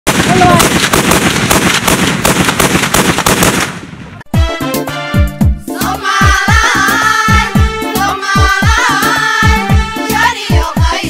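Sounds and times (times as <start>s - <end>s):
automatic gunfire: 0.1s - 4.1s.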